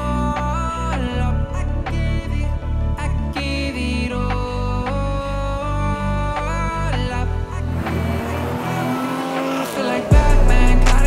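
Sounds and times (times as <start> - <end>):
pop-rap backing music: 0.0 - 11.0
car sound effect: 6.4 - 11.0.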